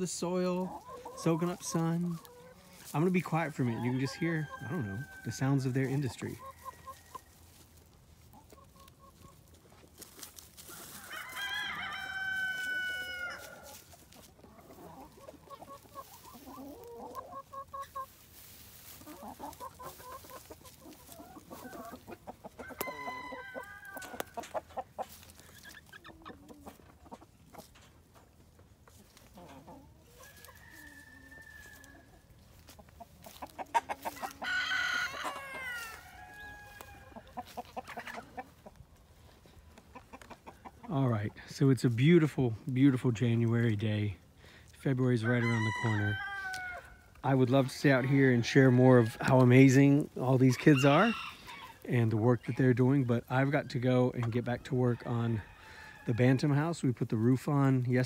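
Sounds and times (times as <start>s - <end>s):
chickens clucking: 0.0s - 58.0s
rooster crowing: 11.0s - 13.7s, 22.6s - 24.4s, 30.2s - 32.1s, 34.4s - 37.2s, 45.4s - 46.9s.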